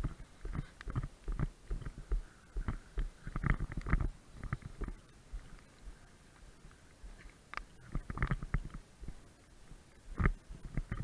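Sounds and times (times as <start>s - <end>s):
wind and water buffeting microphone: 0.0s - 11.0s.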